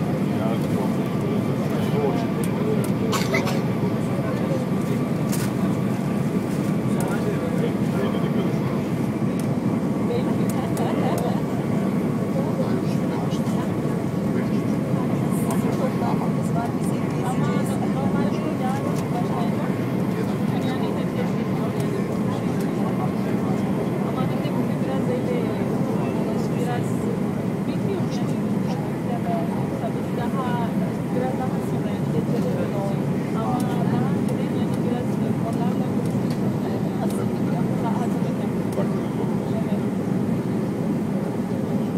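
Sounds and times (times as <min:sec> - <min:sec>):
airflow and engine roar: 0:00.0 - 0:41.9
passengers murmuring: 0:00.0 - 0:41.9.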